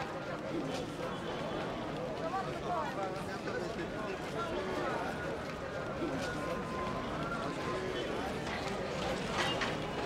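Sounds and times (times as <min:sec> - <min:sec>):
people talking: 0:00.0 - 0:10.0
street market bustle: 0:00.0 - 0:10.0.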